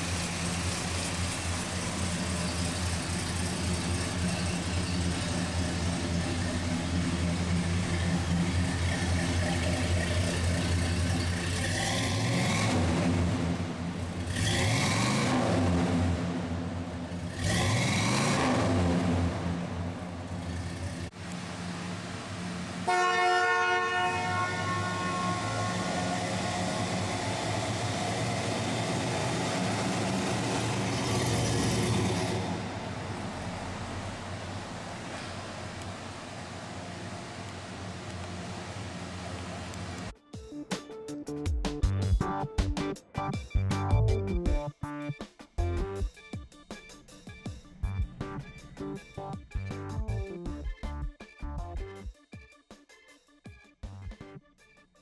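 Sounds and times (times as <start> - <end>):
car engine idling and revving: 0.0 - 23.0, 23.9 - 40.2, 46.9 - 52.1
car horn: 22.8 - 27.0.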